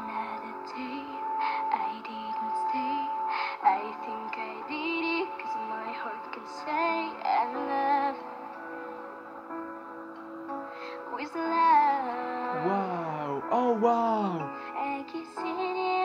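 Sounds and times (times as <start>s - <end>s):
girl singing a pop ballad: 0.0s - 9.6s, 10.5s - 16.0s
piano accompaniment: 0.0s - 16.0s.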